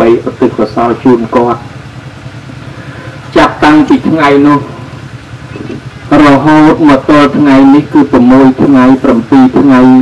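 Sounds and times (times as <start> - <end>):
monk preaching into a microphone: 0.0 - 1.7, 3.3 - 4.8, 5.6 - 10.0
low engine-like hum: 0.0 - 10.0.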